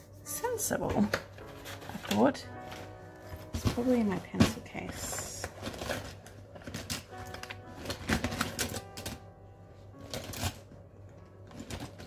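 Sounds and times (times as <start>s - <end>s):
pens clattering in pencil case: 1.0s - 9.2s, 10.0s - 10.7s, 11.4s - 12.0s.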